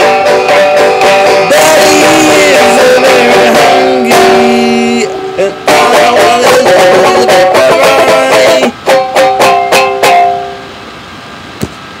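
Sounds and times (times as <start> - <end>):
banjo strummed chord: 0.0 - 10.7.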